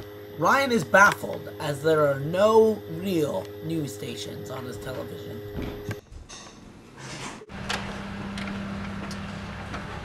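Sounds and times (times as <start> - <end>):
low machine hum: 0.0 - 10.0.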